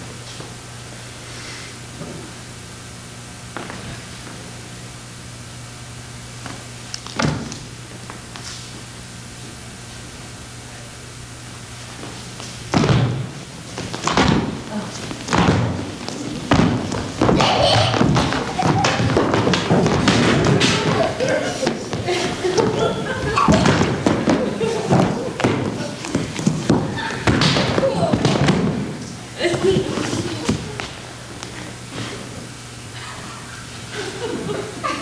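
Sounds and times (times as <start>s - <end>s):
bodies thudding on stage floor: 12.7s - 22.1s
voices: 14.6s - 35.0s.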